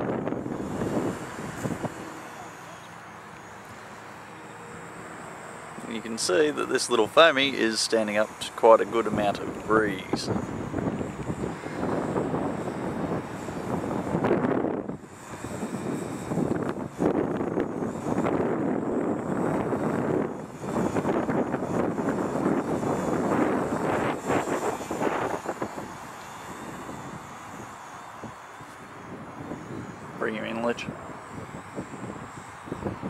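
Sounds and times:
gusting wind: 0.0 - 33.0
model plane motor buzz: 0.0 - 33.0.

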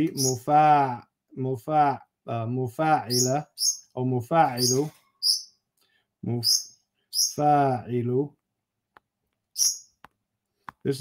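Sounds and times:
man speaking: 0.0 - 4.9, 6.2 - 6.6, 7.3 - 8.4
man drawing breath: 5.8 - 6.1.

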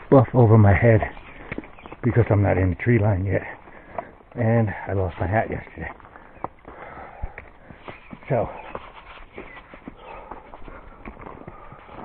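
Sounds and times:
footsteps on a trail: 0.0 - 12.0.

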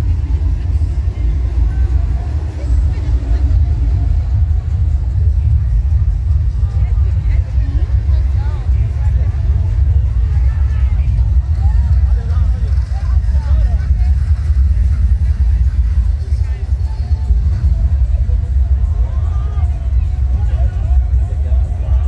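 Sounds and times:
bass-heavy music from sound system: 0.0 - 22.0
people talking: 0.0 - 22.0.

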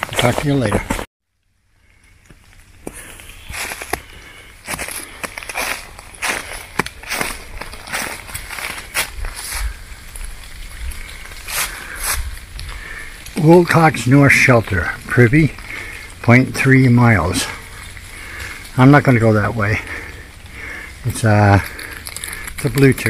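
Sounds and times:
footsteps on snow and dry leaves: 1.9 - 22.9.

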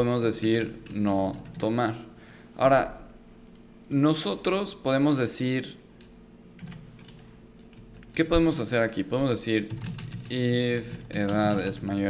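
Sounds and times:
low electrical hum: 0.0 - 12.0
keyboard keystrokes: 9.7 - 11.9.

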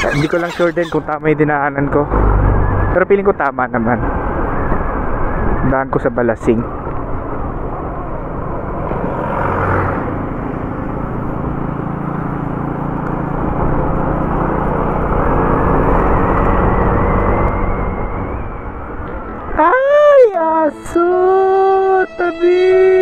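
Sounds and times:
wind rushing on microphone: 2.1 - 11.1
faint whine rising in pitch: 16.4 - 20.2.

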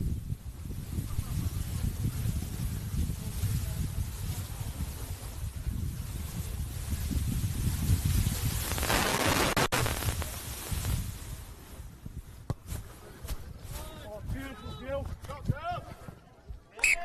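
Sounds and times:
wind buffeting microphone: 0.0 - 16.1.

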